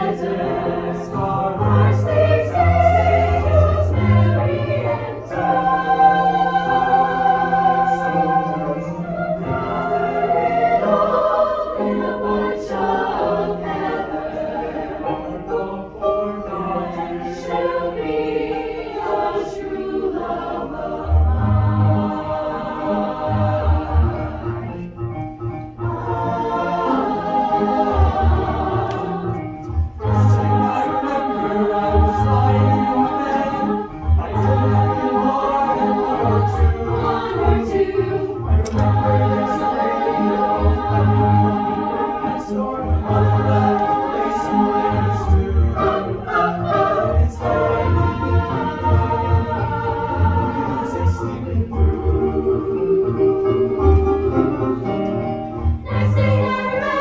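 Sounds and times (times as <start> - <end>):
choir singing in harmony: 0.0 - 57.0
keyboard accompaniment: 0.0 - 57.0.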